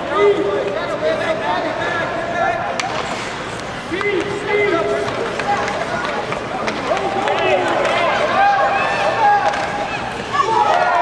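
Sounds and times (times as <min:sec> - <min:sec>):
hockey sticks and skates clicking: 0:02.7 - 0:11.0
spectators shouting: 0:06.6 - 0:11.0.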